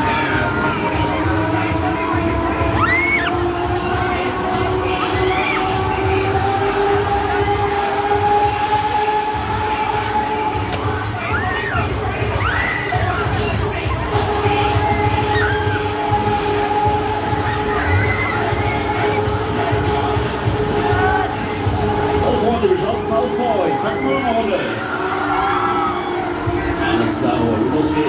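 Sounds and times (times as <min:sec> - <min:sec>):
loud music with bass beat: 0:00.0 - 0:24.0, 0:24.6 - 0:28.0
riders screaming and shouting: 0:00.0 - 0:28.0.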